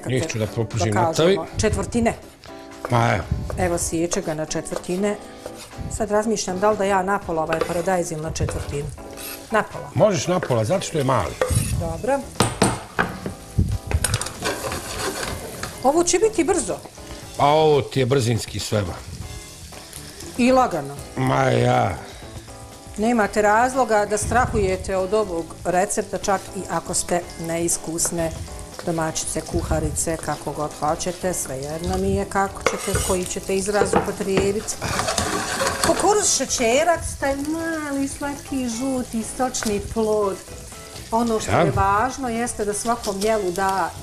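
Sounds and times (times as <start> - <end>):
sausage sizzling in a frying pan: 0.0 - 44.0
knife scraping a pan: 3.6 - 9.8, 10.8 - 12.0, 14.2 - 15.9, 30.1 - 36.4
person speaking: 41.4 - 41.9.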